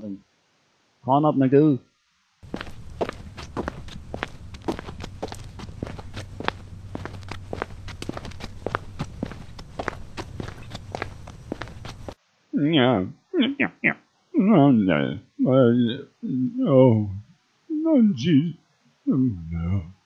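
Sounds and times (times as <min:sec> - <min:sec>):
footsteps walking up: 0:02.4 - 0:12.2
low steady hum: 0:02.4 - 0:13.5.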